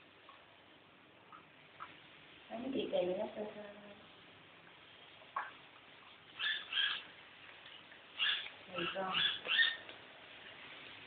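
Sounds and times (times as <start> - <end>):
hamster squeaking: 6.4 - 7.0, 8.2 - 9.8.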